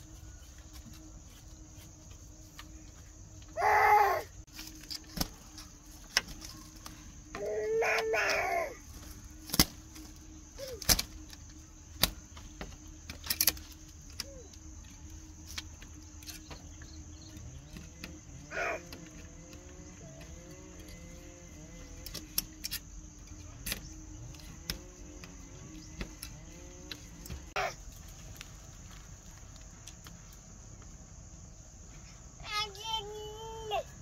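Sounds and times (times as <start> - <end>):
high insect drone: 0.0 - 34.0
faint animal calls: 6.4 - 9.4, 17.4 - 22.2.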